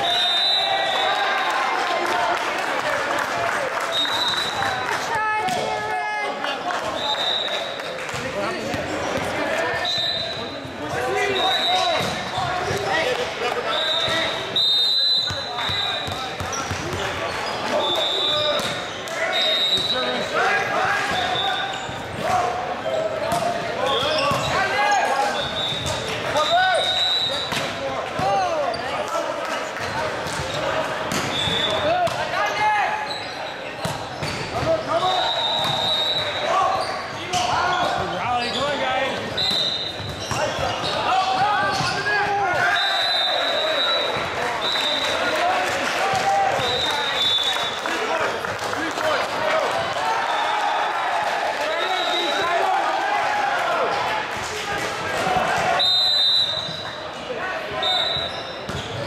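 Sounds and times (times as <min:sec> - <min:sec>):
sneakers squeaking on hardwood: 0:21.1 - 0:22.2, 0:22.9 - 0:24.7, 0:33.0 - 0:42.1, 0:58.0 - 0:59.0.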